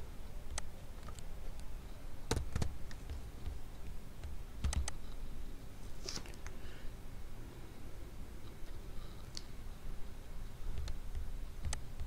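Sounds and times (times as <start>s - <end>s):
computer keyboard typing: 2.3s - 3.5s, 4.6s - 5.0s.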